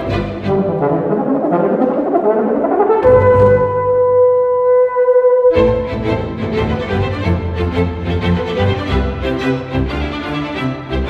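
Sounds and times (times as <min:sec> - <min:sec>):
bass accompaniment: 0:00.0 - 0:11.0
euphonium playing fast notes: 0:00.0 - 0:11.0.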